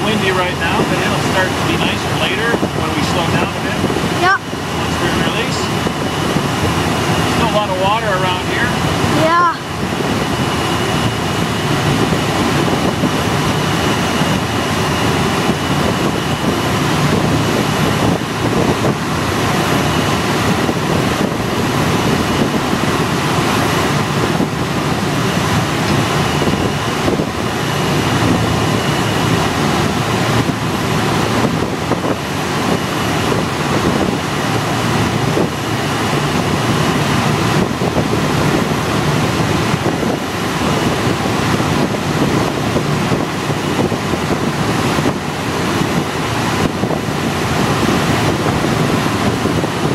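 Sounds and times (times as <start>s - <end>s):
air rushing past cockpit: 0.0s - 49.9s.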